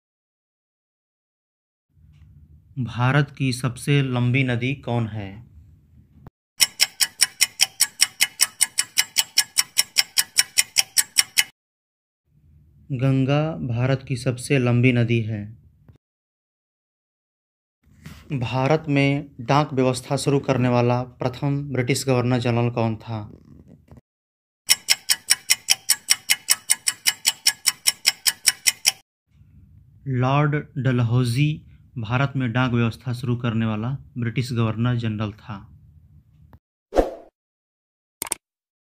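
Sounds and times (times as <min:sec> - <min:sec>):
fast clock ticking: 0:06.6 - 0:11.5, 0:24.7 - 0:29.0.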